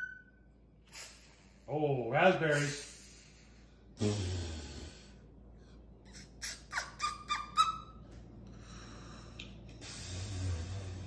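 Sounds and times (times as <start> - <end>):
cockatoo calling: 6.1 - 8.0.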